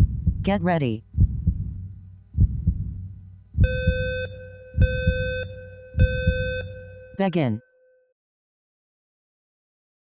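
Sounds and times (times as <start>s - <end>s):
heartbeat thumps: 0.0s - 7.0s
electronic countdown beeps: 3.6s - 7.6s.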